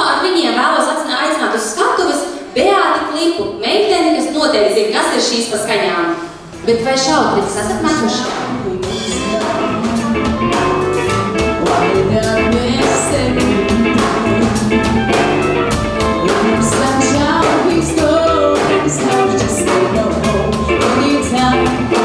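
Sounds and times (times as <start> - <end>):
drum kit beat: 6.2 - 22.0
electric guitar: 6.3 - 22.0
melody line: 9.2 - 17.5.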